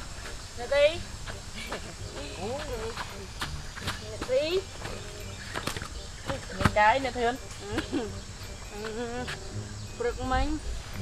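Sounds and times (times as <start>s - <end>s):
high insect buzz: 0.0s - 11.0s.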